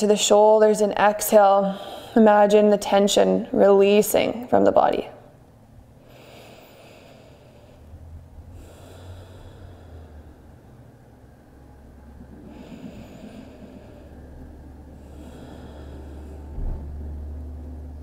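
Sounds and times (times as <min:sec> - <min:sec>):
faint room hum: 0:00.0 - 0:18.0
deep breathing through nose: 0:05.9 - 0:17.4.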